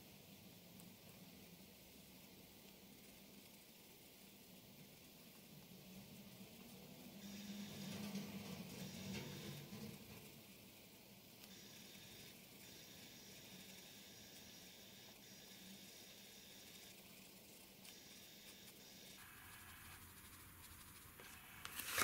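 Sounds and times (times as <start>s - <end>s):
low steady hum: 11.4s - 22.0s
pencil scratching on paper: 16.6s - 21.6s.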